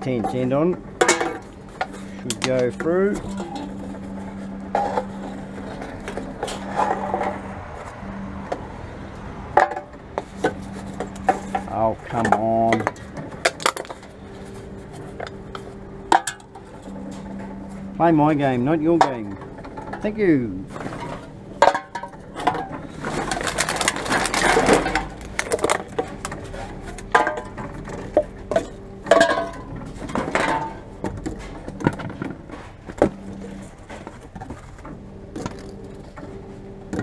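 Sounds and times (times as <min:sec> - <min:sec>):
cans clunking and rattling: 0:00.0 - 0:07.5, 0:09.5 - 0:17.6, 0:19.0 - 0:37.0
vending machine humming: 0:00.0 - 0:37.0.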